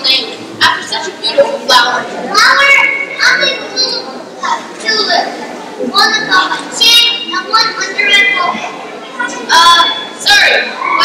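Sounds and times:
children speaking: 0:00.0 - 0:11.0.

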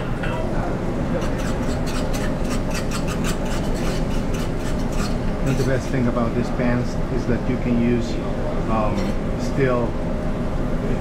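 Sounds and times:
kitchen ventilation hum: 0:00.0 - 0:11.0
fork scraping eggs in a frying pan: 0:01.2 - 0:05.9.

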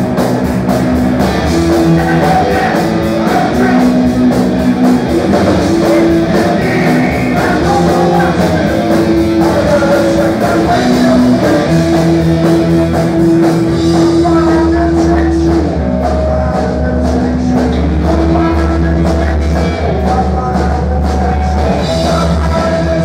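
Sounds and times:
bass guitar: 0:00.0 - 0:23.0
drum kit: 0:00.0 - 0:23.0
electric guitars: 0:00.0 - 0:23.0
steady cymbal beat: 0:00.0 - 0:23.0.

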